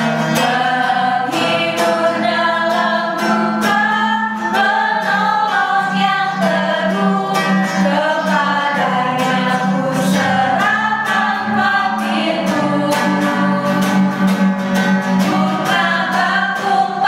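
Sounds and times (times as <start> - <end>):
strummed acoustic guitar: 0.0 - 17.0
women singing a worship song: 0.1 - 17.0.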